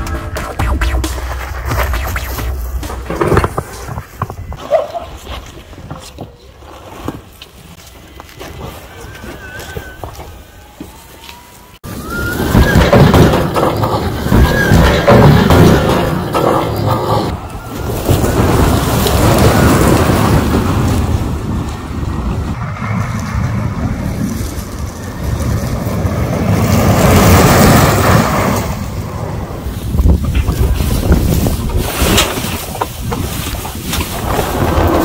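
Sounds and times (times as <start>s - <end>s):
tyres crunching on gravel: 1.2s - 11.7s
wind buffeting microphone: 17.2s - 35.0s.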